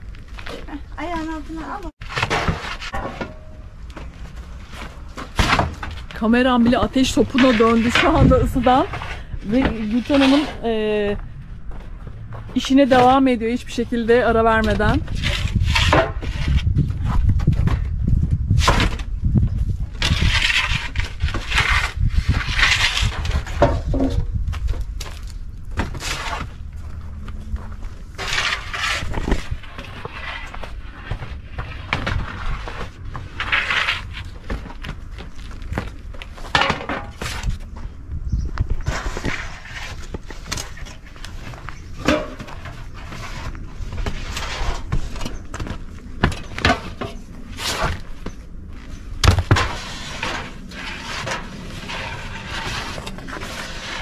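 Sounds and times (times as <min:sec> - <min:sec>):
steady low rumble: 0:03.6 - 0:54.0.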